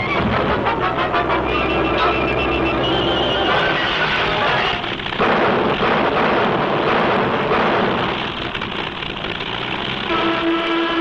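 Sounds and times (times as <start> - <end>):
propeller aircraft droning: 0.0 - 11.0.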